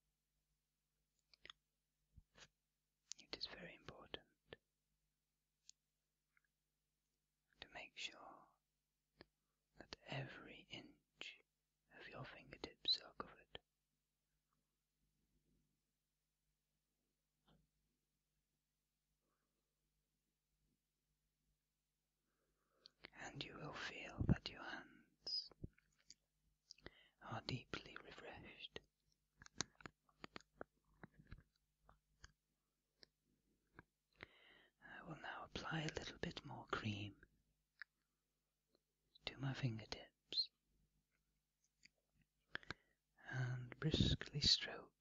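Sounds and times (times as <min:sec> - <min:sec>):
person whispering: 0:03.1 - 0:04.6, 0:07.6 - 0:08.6, 0:09.8 - 0:13.6, 0:23.0 - 0:25.7, 0:26.8 - 0:28.9, 0:34.2 - 0:37.3, 0:39.2 - 0:40.6, 0:42.5 - 0:45.0.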